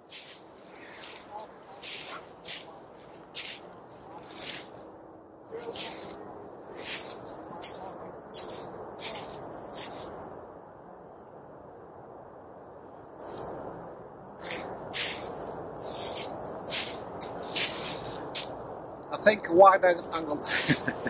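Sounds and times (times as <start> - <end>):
footsteps crunching on frosty grass: 0.0 - 4.9, 5.5 - 10.2, 14.4 - 18.7, 20.0 - 21.0
steady background hiss: 0.0 - 21.0.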